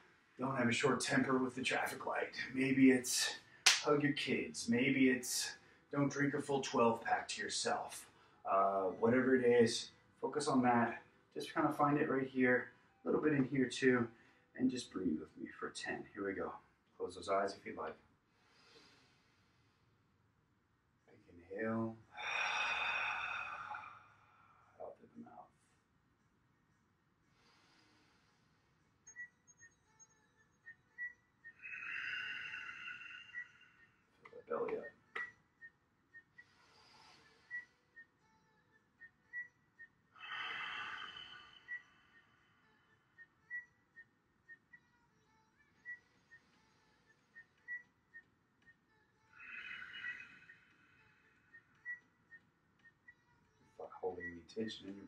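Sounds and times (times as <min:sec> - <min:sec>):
deep exhale through mouth: 0:22.2 - 0:24.0, 0:40.2 - 0:41.8
man inhaling deeply: 0:22.2 - 0:24.6, 0:31.6 - 0:33.8, 0:40.2 - 0:41.8
faint high chirps: 0:29.0 - 0:55.0.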